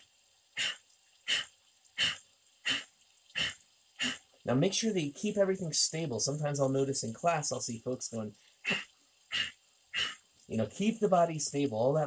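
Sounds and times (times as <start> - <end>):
forceful nasal exhales: 0.6 - 2.8, 8.6 - 10.2.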